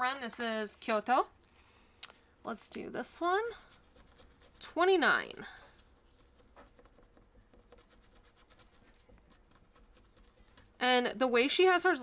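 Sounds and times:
metal tool scratching coating: 3.5 - 10.7.

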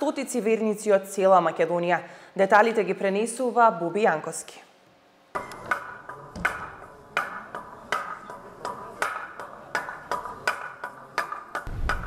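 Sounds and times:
wooden mallet knocks on wood: 5.4 - 12.0.

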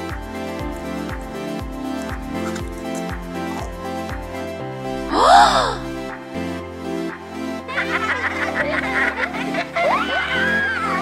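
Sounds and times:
background music with held chords: 0.0 - 11.0
high-pitched snickering laugh: 7.7 - 10.4.

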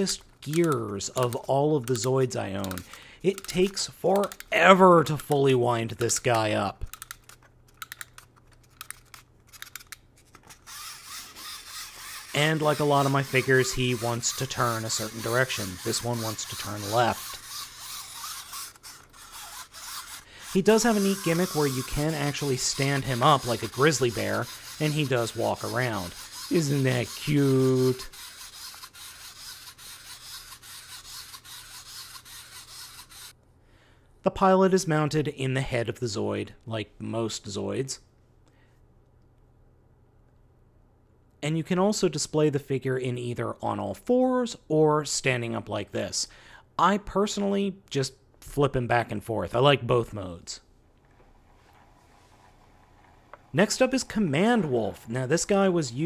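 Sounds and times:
plastic clicks of spring winding: 0.0 - 33.3
toy gearbox whirring: 0.0 - 33.4, 51.2 - 56.0.

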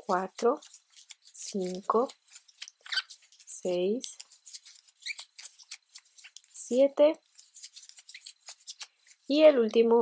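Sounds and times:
yarn scratching over crochet hook: 0.0 - 9.4.

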